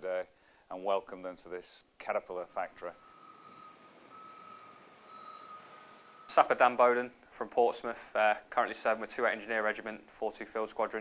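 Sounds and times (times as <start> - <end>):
low background noise: 0.0 - 11.0
faint high-pitched tone: 2.5 - 6.5.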